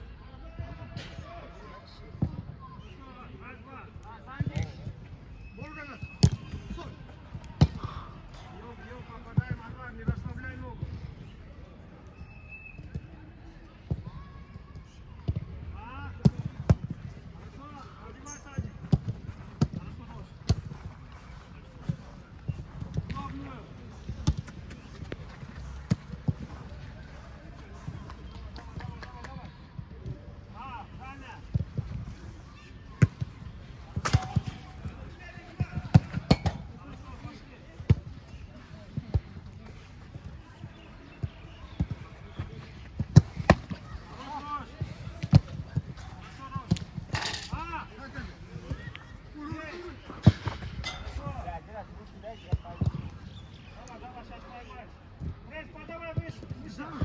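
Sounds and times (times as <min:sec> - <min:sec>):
footballs being kicked: 0:24.0 - 0:30.2, 0:32.9 - 0:47.7, 0:48.6 - 0:51.0, 0:52.5 - 0:53.4.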